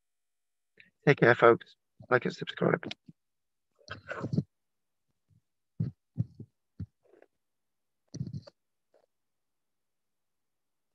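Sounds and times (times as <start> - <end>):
muffled hand thumps: 5.8 - 7.0, 8.2 - 8.5.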